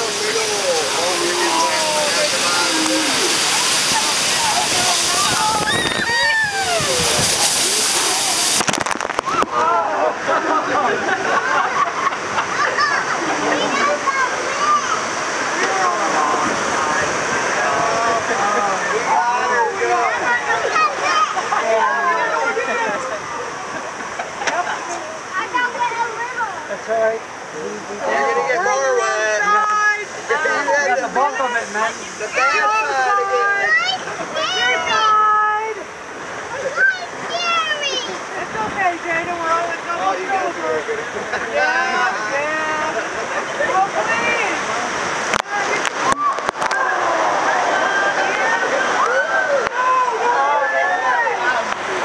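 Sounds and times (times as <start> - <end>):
faint voices: 0.0 - 52.0
white water rushing: 0.0 - 52.0.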